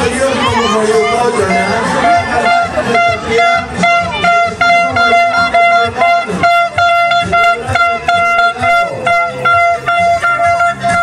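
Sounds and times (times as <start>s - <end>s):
crowd voices: 0.0s - 11.0s
plastic toy trumpets tooting: 2.4s - 11.0s.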